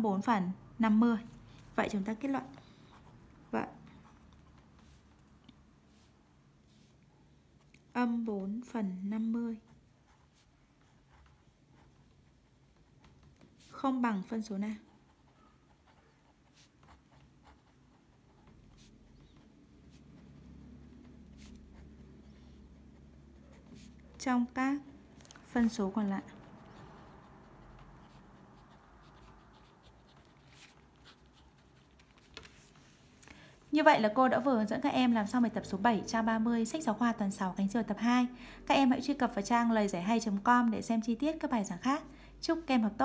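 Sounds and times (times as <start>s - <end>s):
pen scratching on paper: 1.9s - 5.2s, 9.5s - 33.1s.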